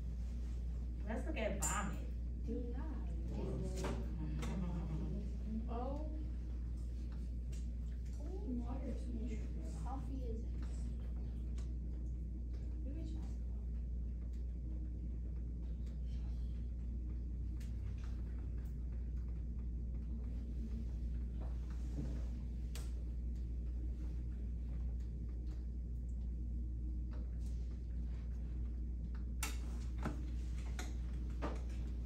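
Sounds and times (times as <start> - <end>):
low hum: 0.0 - 32.0.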